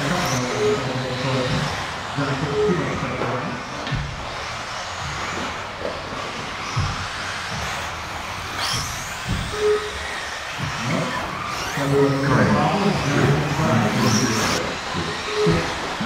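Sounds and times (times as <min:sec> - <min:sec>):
rc cars motor whine: 0:00.0 - 0:16.0
low thumps: 0:03.3 - 0:11.8.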